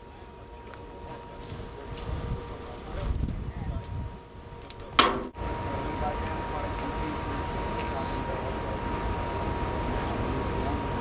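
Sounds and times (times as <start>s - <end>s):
faint high hum: 0.0s - 11.0s
outdoor background noise: 0.0s - 11.0s.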